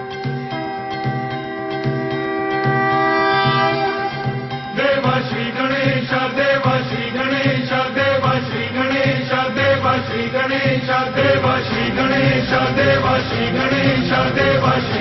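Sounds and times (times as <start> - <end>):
backing music track: 0.0 - 15.0
voices singing devotional chant: 4.5 - 15.0.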